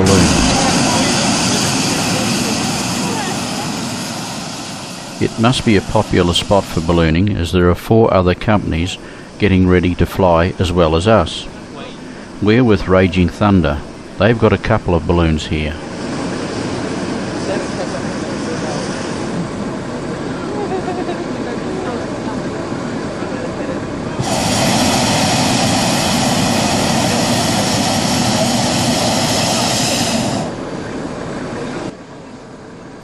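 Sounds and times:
background voices: 0.0 - 16.0
propane burner roaring: 0.0 - 33.0.

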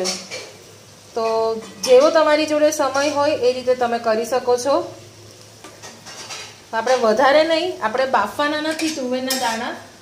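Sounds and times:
light sizzle: 0.0 - 10.0
spatula scraping a pan: 5.8 - 7.1, 8.6 - 9.8.

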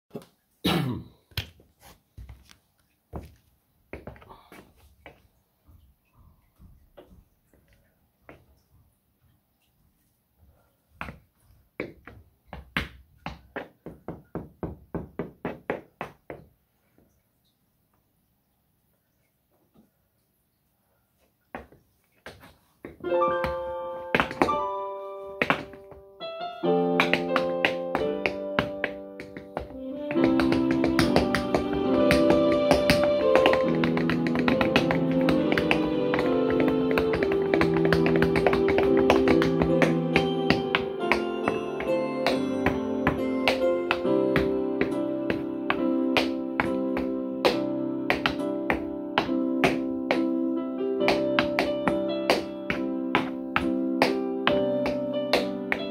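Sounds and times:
shoes striking wooden board: 11.8 - 16.5, 21.6 - 24.6, 25.4 - 26.0, 27.0 - 41.2
music with held chords: 23.1 - 55.9.

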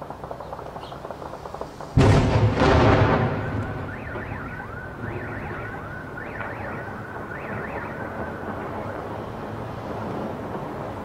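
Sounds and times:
explosion rumbling: 0.2 - 11.0
car alarms warbling: 3.1 - 9.1.

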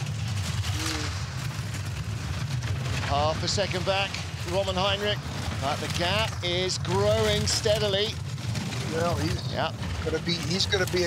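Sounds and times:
bobsleigh runners rumbling on ice: 0.0 - 11.0.

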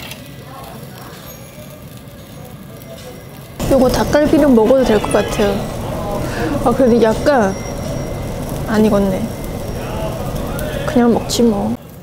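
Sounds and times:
meat sizzling on a charcoal grill: 0.0 - 12.0.

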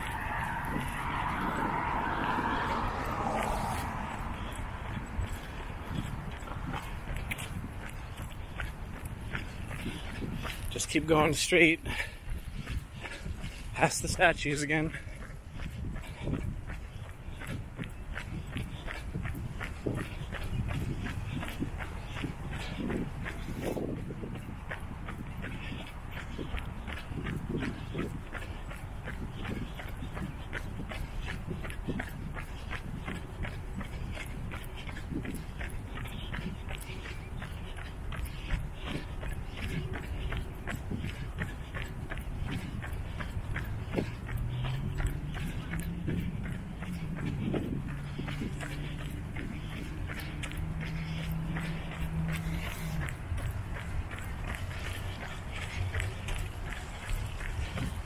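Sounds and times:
runner breathing: 0.0 - 58.0
running footsteps on concrete: 0.0 - 58.0.

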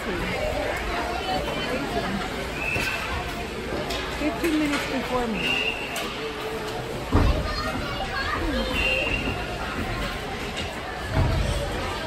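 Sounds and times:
children's voices: 0.0 - 4.8, 5.8 - 12.0.

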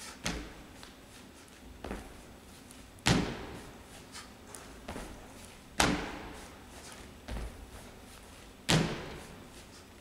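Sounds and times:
feet landing hard on floor: 1.8 - 2.3, 3.0 - 9.8
dull thump: 8.7 - 9.2.

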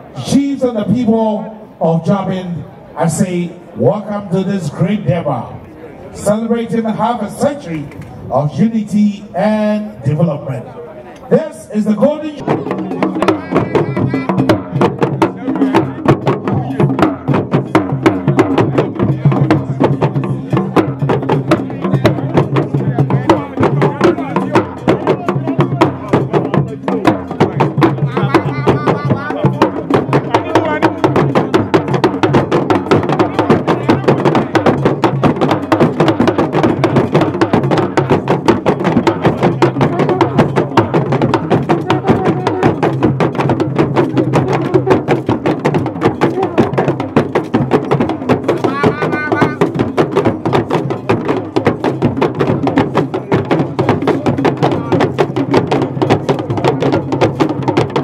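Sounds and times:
fast drumming and percussion: 0.0 - 5.6, 11.3 - 58.0
crowd voices: 2.4 - 17.3, 18.1 - 50.2
person calling out: 12.4 - 14.8, 28.0 - 30.9, 39.8 - 40.4, 41.7 - 42.9, 46.3 - 46.8, 48.6 - 49.8.

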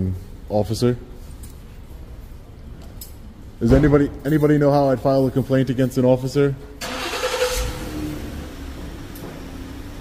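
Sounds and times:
car engine: 6.8 - 10.0.

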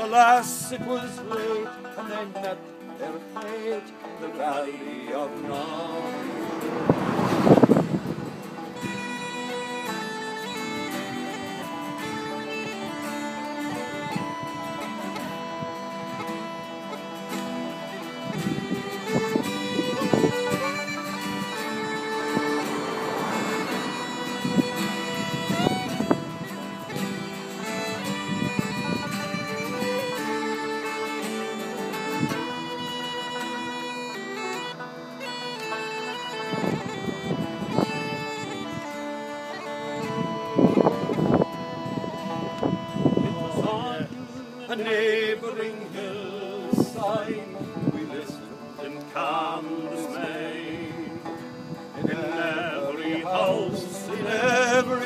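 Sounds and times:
acoustic guitar: 0.0 - 55.0
fiddle: 0.0 - 55.0
uilleann pipes: 0.0 - 55.0.

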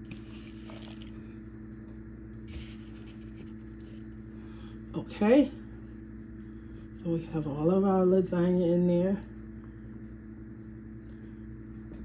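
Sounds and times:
cheese rustling and scraping: 0.0 - 1.2, 2.4 - 4.1
low electrical hum: 0.0 - 12.0.

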